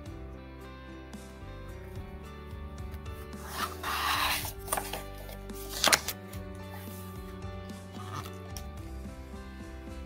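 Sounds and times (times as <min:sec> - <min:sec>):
book page rustling: 0:02.9 - 0:08.7
page flicking and snapping: 0:03.4 - 0:06.2.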